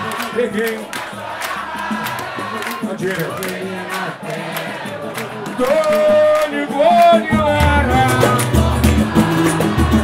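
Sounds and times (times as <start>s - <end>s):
acoustic band playing: 0.0s - 10.0s
crowd singing samba chorus: 0.0s - 10.0s
hand clapping: 0.0s - 10.0s
percussion beat: 0.0s - 10.0s.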